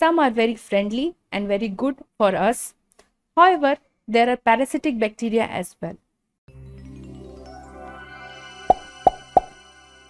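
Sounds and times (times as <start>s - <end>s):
musical jingle: 6.5s - 10.0s.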